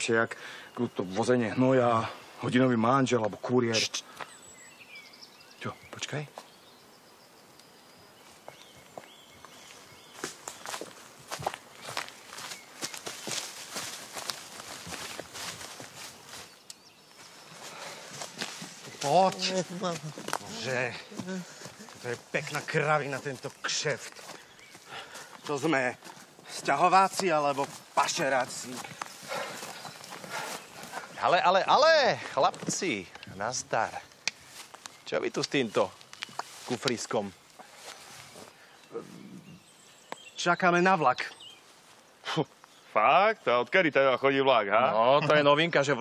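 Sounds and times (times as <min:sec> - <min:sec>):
footsteps through tall grass: 0:08.2 - 0:31.5, 0:33.8 - 0:38.8, 0:41.4 - 0:42.6
rustling stalks: 0:08.2 - 0:40.1.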